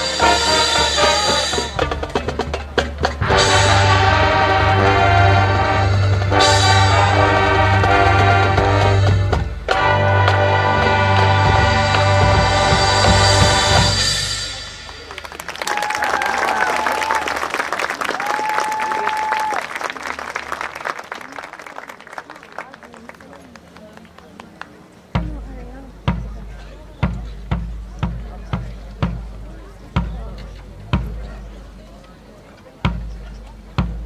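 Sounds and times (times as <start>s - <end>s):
marching band playing chords: 0.0s - 18.4s, 24.8s - 34.0s
crowd voices: 0.0s - 34.0s
spectators applauding: 14.9s - 24.8s.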